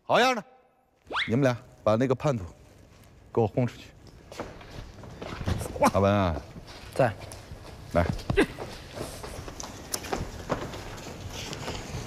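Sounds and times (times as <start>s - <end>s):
footsteps and scuffing on stage floor: 2.3s - 12.0s.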